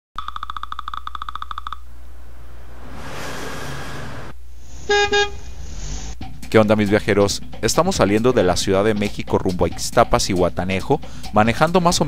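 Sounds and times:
car driving past: 0:02.0 - 0:06.2
car horn honking: 0:04.8 - 0:05.6.

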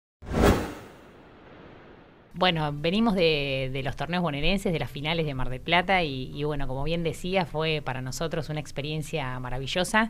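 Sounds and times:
whoosh: 0:00.2 - 0:02.3.

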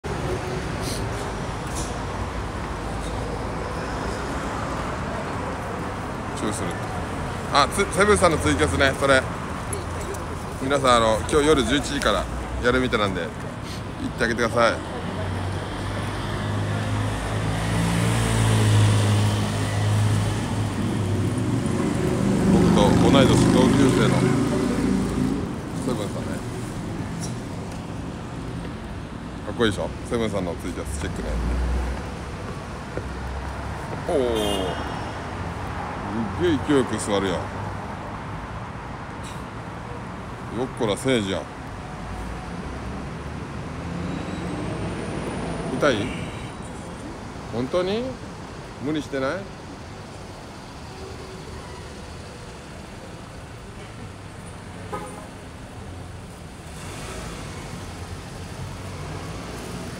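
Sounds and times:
passing vehicle rumble: 0:00.0 - 0:50.9
road traffic: 0:00.0 - 0:59.9.

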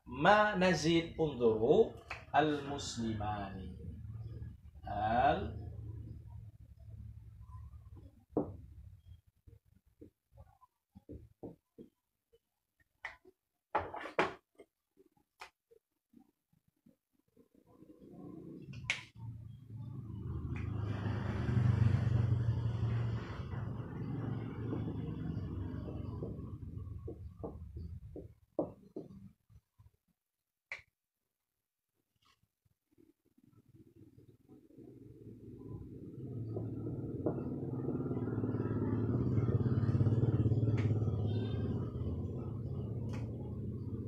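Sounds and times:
passing vehicle engine rumble: 0:18.1 - 0:28.0, 0:34.8 - 0:44.0.

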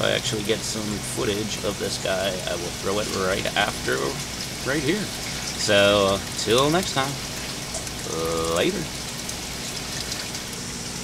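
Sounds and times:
water splashing into fish tank: 0:00.0 - 0:11.0.

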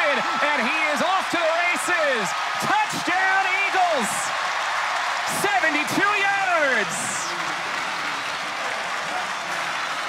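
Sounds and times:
stadium crowd noise: 0:00.0 - 0:10.0
commentator's raised voice: 0:05.3 - 0:07.4.

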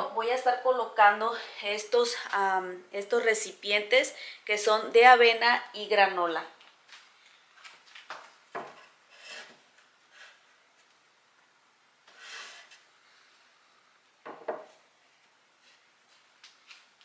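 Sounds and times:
glass jars knocking on wood: 0:14.2 - 0:14.7.

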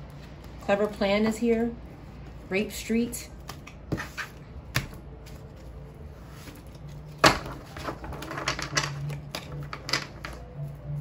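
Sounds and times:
cards being shuffled: 0:03.3 - 0:11.0.

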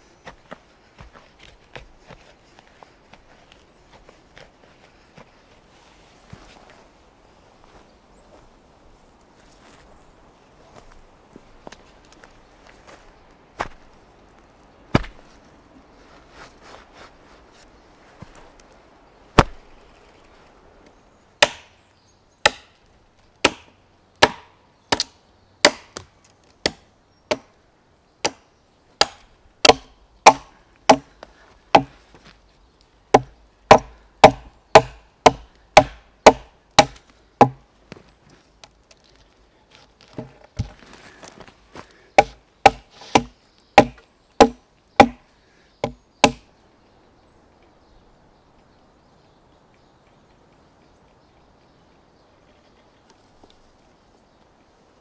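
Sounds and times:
axe chopping wood: 0:14.9 - 0:15.2, 0:19.4 - 0:19.6, 0:21.4 - 0:21.8, 0:22.4 - 0:22.8, 0:23.4 - 0:27.5, 0:28.2 - 0:31.1, 0:31.7 - 0:32.0, 0:33.1 - 0:37.6, 0:42.2 - 0:45.2, 0:45.8 - 0:46.5.

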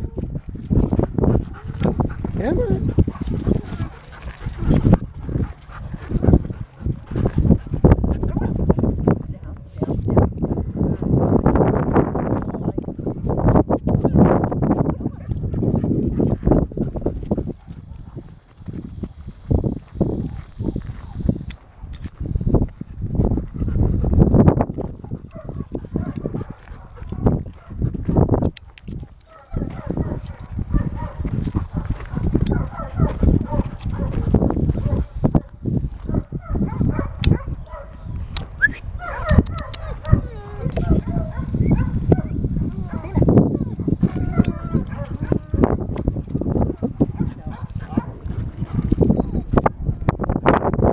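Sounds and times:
footsteps crunching on gravel: 0:00.2 - 0:09.0, 0:15.5 - 0:23.1, 0:24.7 - 0:36.3, 0:44.0 - 0:49.1.

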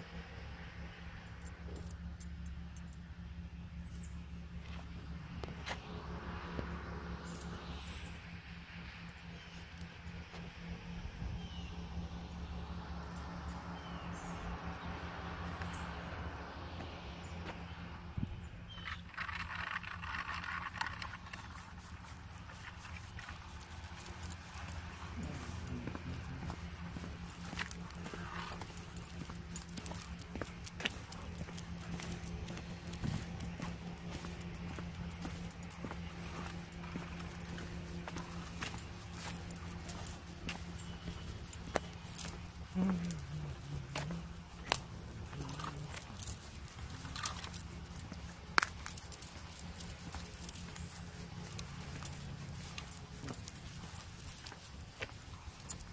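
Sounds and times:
steady low hum: 0:00.0 - 0:55.9
dog leash and collar jingling: 0:01.2 - 0:03.1, 0:06.6 - 0:11.5, 0:12.4 - 0:14.8, 0:18.7 - 0:55.9
bird chirps: 0:18.4 - 0:19.7, 0:33.6 - 0:44.4
footsteps: 0:19.0 - 0:55.9.

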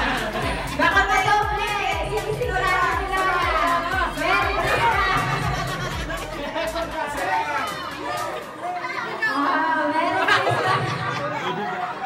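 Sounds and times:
background music with steady beat: 0:00.0 - 0:09.2
crowd chattering: 0:00.0 - 0:12.0.

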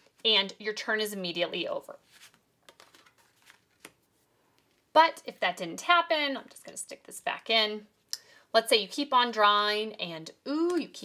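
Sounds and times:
playing card rustling and tapping: 0:02.1 - 0:04.8.

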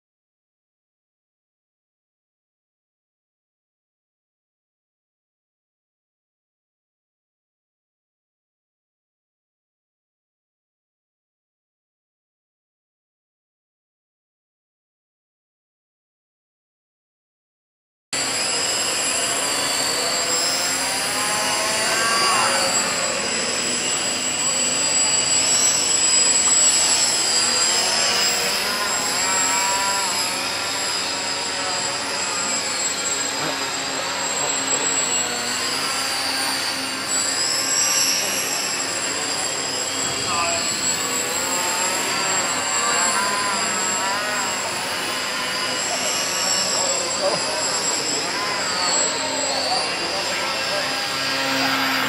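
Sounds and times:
high-pitched electric motor whine: 0:18.2 - 0:52.0.

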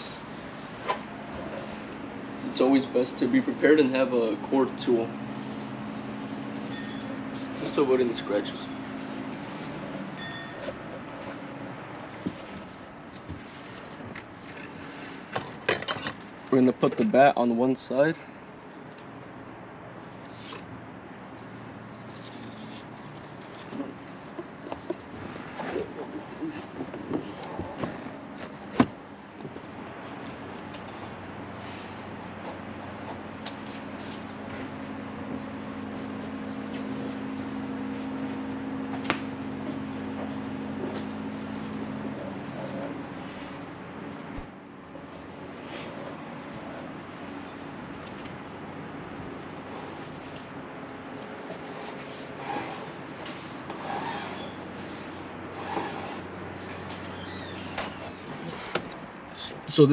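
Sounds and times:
steady low hum: 0:00.0 - 0:59.9
wire rubbing against windshield: 0:21.9 - 0:28.8, 0:49.2 - 0:59.2.

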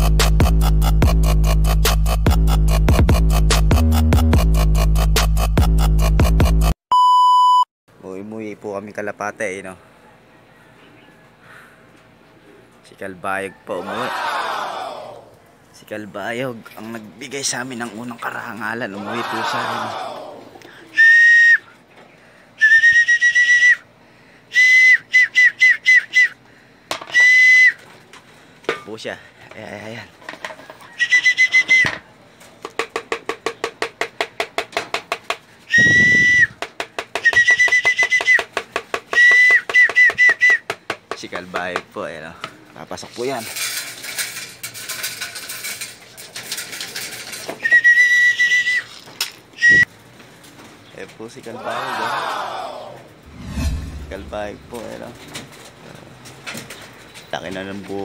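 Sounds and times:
pigeon whistle blasts: 0:20.9 - 0:21.7, 0:22.6 - 0:23.9, 0:24.5 - 0:26.4, 0:27.1 - 0:27.8, 0:30.9 - 0:32.0, 0:35.6 - 0:40.7, 0:47.6 - 0:48.9, 0:49.6 - 0:49.9
low bump: 0:53.2 - 0:55.3.

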